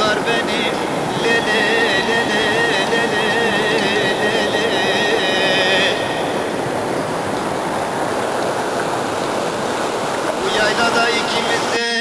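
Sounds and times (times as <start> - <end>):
folk song melody: 0.0 - 7.0
steady rushing noise: 0.0 - 12.0.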